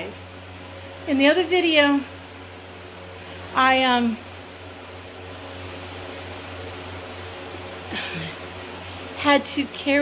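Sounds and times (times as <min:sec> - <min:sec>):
machine hum with faint hiss: 0:00.0 - 0:10.0.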